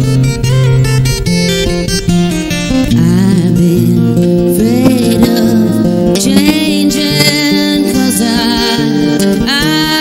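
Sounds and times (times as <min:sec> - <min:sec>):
fingerpicked acoustic guitar: 0:00.0 - 0:10.0
woman singing: 0:02.9 - 0:10.0.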